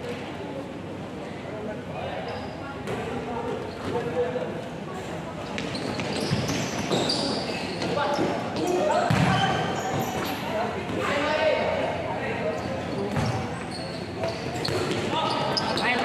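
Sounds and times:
ball kicked and bouncing: 9.1s - 10.3s.

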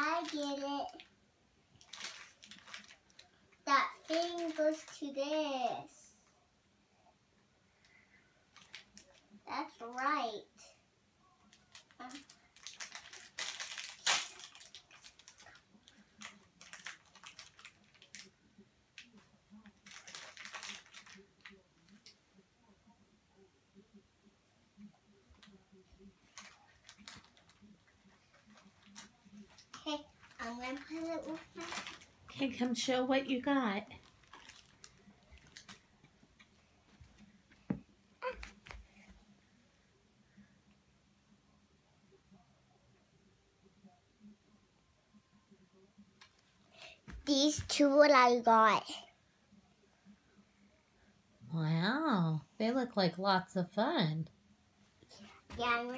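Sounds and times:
plastic packaging crinkling: 1.8s - 3.3s, 8.6s - 9.2s, 11.6s - 18.3s, 19.0s - 21.6s, 28.3s - 32.8s, 33.9s - 35.8s.

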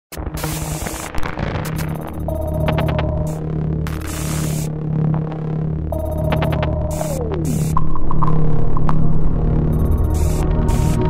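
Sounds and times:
electronic music: 0.1s - 11.0s
static-like noise rush: 0.1s - 11.0s
low steady drone: 0.3s - 11.0s.

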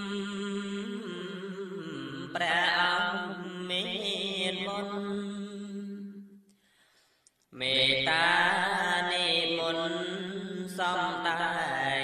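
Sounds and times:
man chanting: 0.0s - 5.7s, 7.6s - 12.0s.

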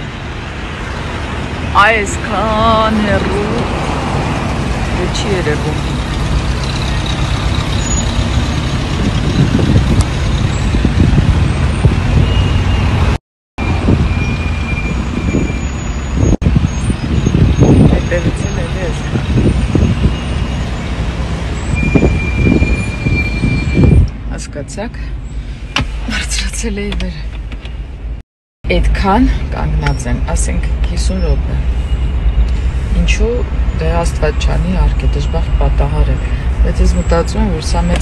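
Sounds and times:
vehicle and road noise: 0.0s - 38.0s
wind buffeting microphone: 2.6s - 24.2s.

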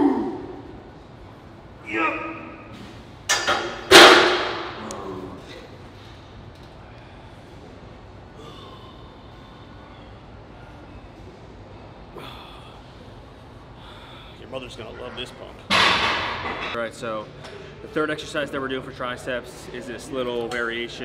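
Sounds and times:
loud metal clang: 3.3s - 4.8s, 15.7s - 16.8s.

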